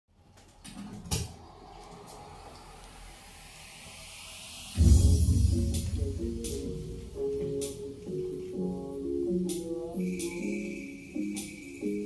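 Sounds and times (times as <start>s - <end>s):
rising hiss: 1.9s - 7.3s
bass-heavy music from speaker: 4.8s - 12.0s.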